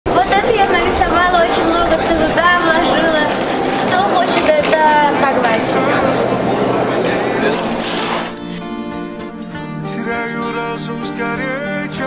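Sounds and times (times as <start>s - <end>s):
people talking indistinctly: 0.1s - 8.7s.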